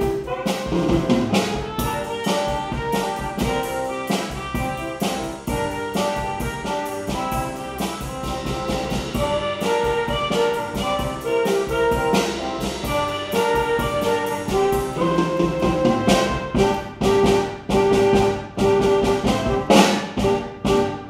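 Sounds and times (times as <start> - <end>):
brass ensemble playing: 0.0 - 21.0.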